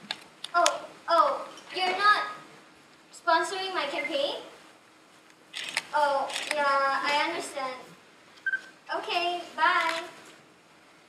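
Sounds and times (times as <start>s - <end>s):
woman speaking: 3.2s - 4.5s, 6.0s - 7.8s, 8.9s - 10.1s.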